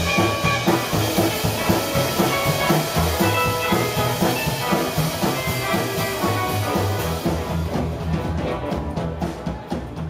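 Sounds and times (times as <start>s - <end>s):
drum kit steady beat: 0.0s - 10.0s
electric guitars: 0.0s - 10.0s
rockabilly band playing live: 0.0s - 10.0s.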